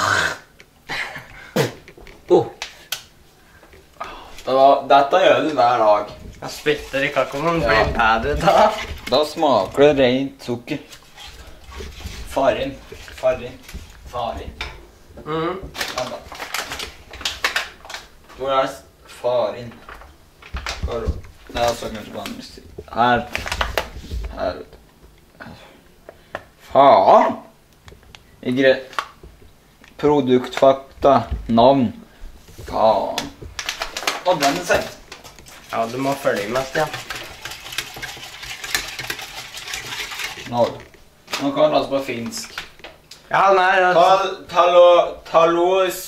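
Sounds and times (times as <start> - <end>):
paper bag crinkling: 6.2 - 9.8, 15.8 - 18.1, 19.8 - 24.3, 33.1 - 41.0
whisk clinking and scraping in pan: 35.5 - 40.5.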